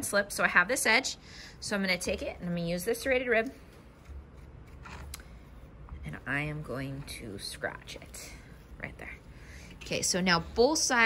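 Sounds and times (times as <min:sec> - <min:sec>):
steady low hum: 0:00.0 - 0:11.0
tool scraping clay pot: 0:03.8 - 0:07.3.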